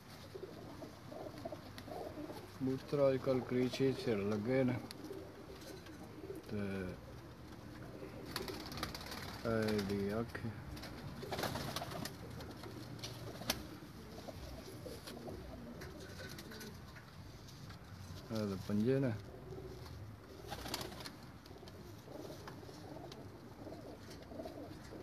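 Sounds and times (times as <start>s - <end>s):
pigeons cooing faintly: 0.0s - 25.0s
person speaking: 18.2s - 19.4s.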